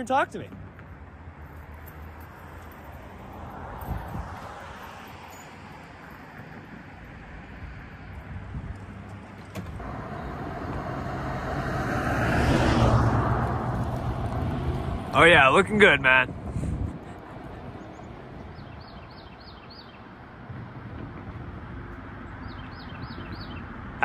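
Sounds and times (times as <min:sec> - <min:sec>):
car passing by: 0:01.3 - 0:08.2, 0:08.9 - 0:18.9
faint vehicle passing: 0:07.5 - 0:19.1.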